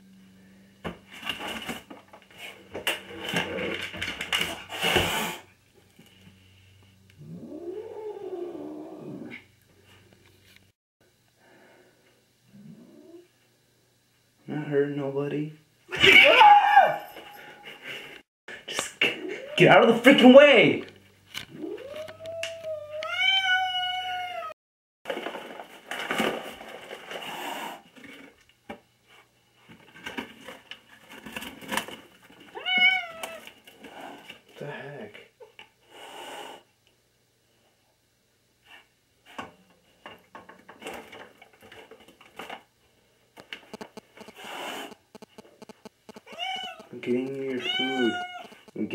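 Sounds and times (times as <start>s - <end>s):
rustling and handling noises: 1.0s - 4.7s, 25.1s - 34.6s, 38.6s - 48.9s
cat yowling: 15.9s - 17.1s, 21.5s - 24.6s, 32.6s - 33.4s, 46.3s - 46.9s, 47.5s - 48.6s.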